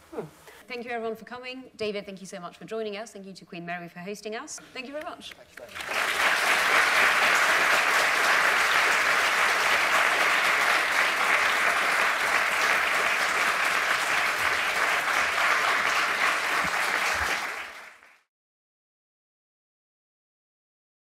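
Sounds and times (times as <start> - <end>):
audience applauding: 5.6 - 18.3.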